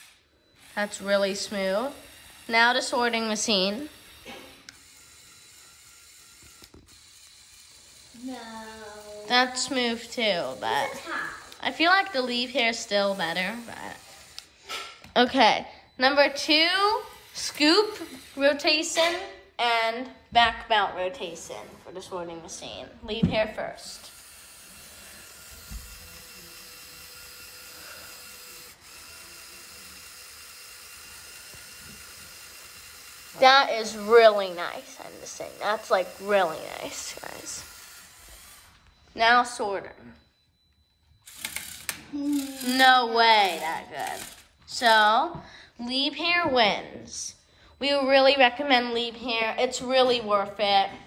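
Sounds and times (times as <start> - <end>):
toy motor driving gears: 0.0 - 19.2, 23.5 - 39.6, 40.7 - 45.2.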